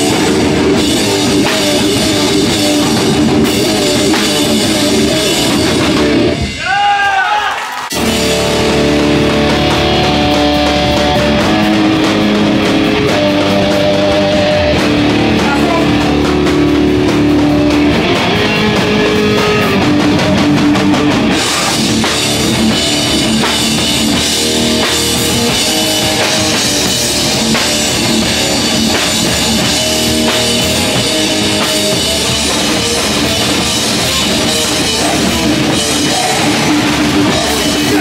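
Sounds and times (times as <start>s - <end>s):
distorted guitar and bass riff: 0.0s - 6.7s, 7.9s - 38.0s
drums and cymbals: 0.0s - 38.0s.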